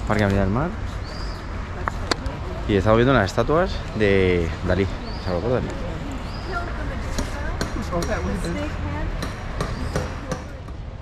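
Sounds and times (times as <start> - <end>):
sharp knocks: 7.1 - 8.3.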